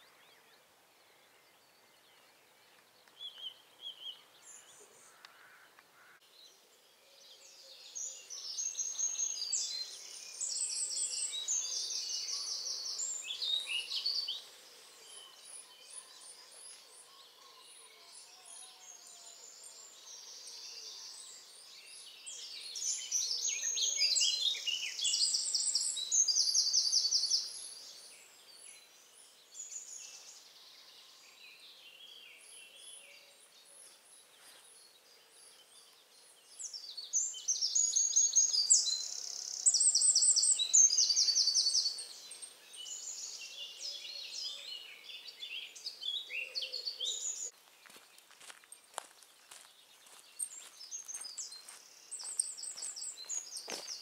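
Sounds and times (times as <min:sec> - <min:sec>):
faint birdsong: 0:00.0 - 0:54.0.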